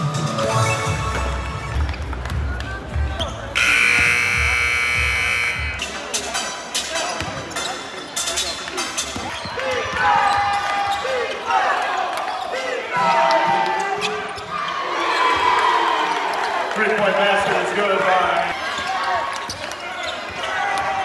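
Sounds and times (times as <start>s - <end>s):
background music: 0.0s - 7.1s
sneakers squeaking: 3.1s - 5.9s, 7.0s - 11.3s, 13.8s - 15.4s, 19.5s - 20.5s
arena buzzer blast: 3.6s - 5.8s.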